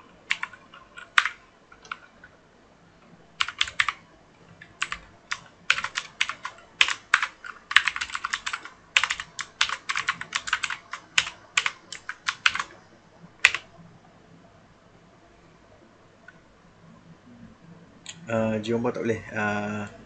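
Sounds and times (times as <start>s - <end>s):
typing on computer keyboard: 0.3s - 2.1s, 3.4s - 4.0s, 4.6s - 12.7s, 13.4s - 13.7s.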